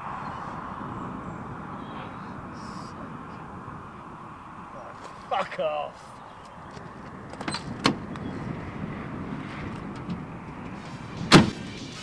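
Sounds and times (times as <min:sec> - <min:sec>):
car door slamming shut: 0:07.4 - 0:08.1, 0:11.2 - 0:11.8.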